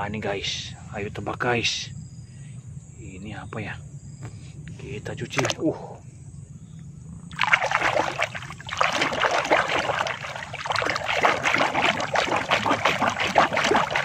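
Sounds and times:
hand splashing in shallow water: 0:05.3 - 0:05.6, 0:07.3 - 0:14.0.

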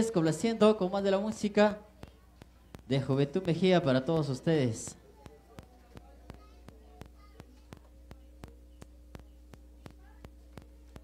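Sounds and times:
faint voices: 0:00.0 - 0:11.0
low steady hum: 0:00.0 - 0:11.0.

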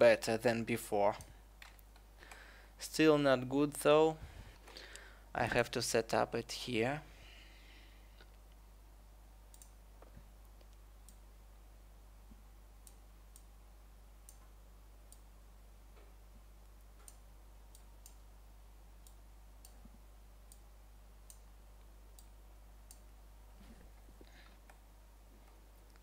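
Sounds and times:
steady low hum: 0:00.0 - 0:26.0
computer mouse clicks: 0:09.5 - 0:11.2.

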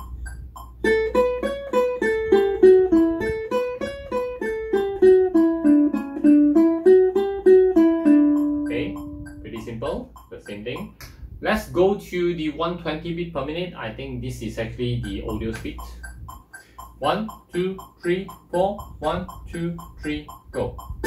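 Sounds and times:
ukulele scale run: 0:00.0 - 0:11.4, 0:14.3 - 0:21.0
metronome ticking: 0:00.0 - 0:21.0.

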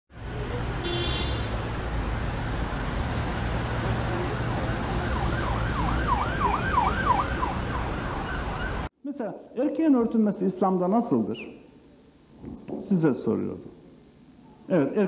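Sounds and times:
street traffic rumble: 0:00.1 - 0:08.9
emergency vehicle siren: 0:03.4 - 0:08.9.

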